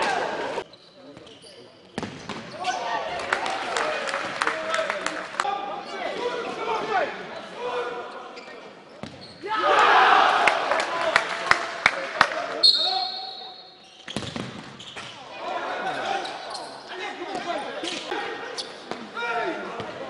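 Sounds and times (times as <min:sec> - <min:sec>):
players shouting: 0:00.0 - 0:00.6, 0:02.5 - 0:08.2, 0:09.4 - 0:13.2, 0:15.2 - 0:20.0
ball kicks and bounces echoing: 0:02.0 - 0:02.5, 0:09.0 - 0:09.2, 0:14.1 - 0:15.2
referee whistle blast: 0:12.6 - 0:13.8.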